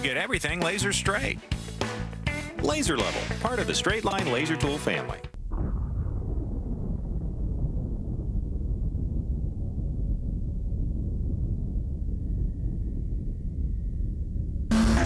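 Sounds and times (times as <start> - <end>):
steady low rumble: 5.3 - 15.0
sudden loud burst of noise: 5.4 - 15.0.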